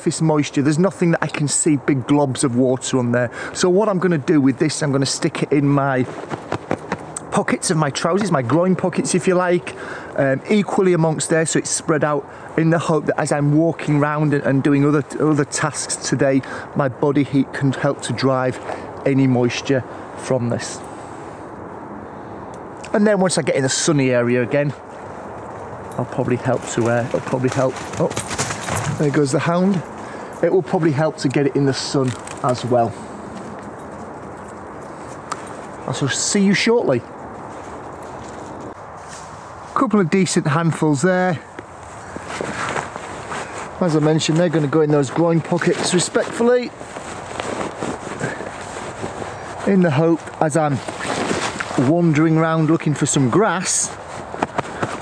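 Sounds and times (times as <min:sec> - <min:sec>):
man speaking: 0:00.0 - 0:06.2, 0:07.1 - 0:20.9, 0:22.8 - 0:24.8, 0:25.9 - 0:28.2, 0:28.8 - 0:33.1, 0:35.8 - 0:37.1, 0:39.8 - 0:41.5, 0:43.7 - 0:46.8, 0:49.6 - 0:50.9, 0:51.8 - 0:54.0
dry bark and fabric rustling: 0:05.0 - 0:09.1, 0:23.9 - 0:40.0, 0:41.4 - 0:55.0.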